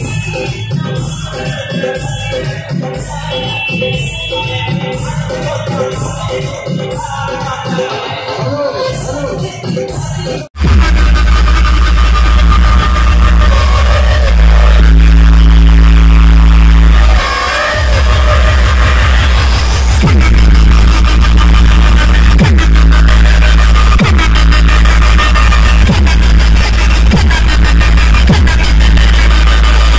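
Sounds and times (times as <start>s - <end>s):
electronic dance music: 0.0s - 29.9s
falling bass sweeps: 10.6s - 29.9s.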